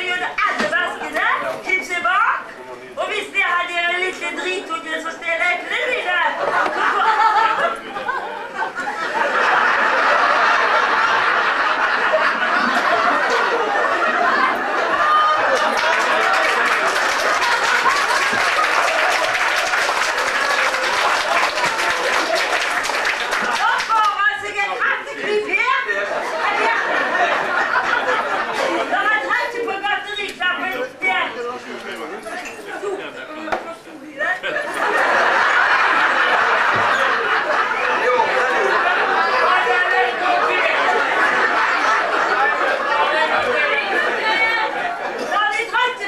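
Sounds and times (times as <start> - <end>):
several voices talking: 0.0 - 18.7, 23.2 - 46.0.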